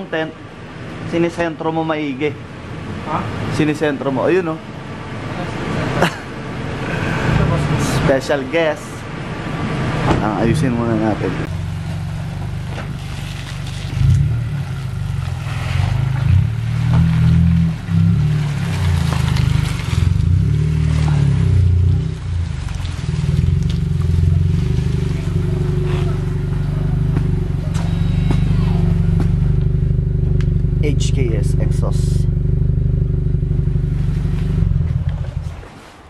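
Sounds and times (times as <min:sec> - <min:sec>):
car engine running and idling: 0:00.0 - 0:35.7.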